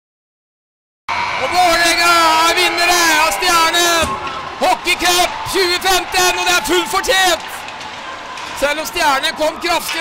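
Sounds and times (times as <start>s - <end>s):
faint arena noise: 1.1s - 10.0s.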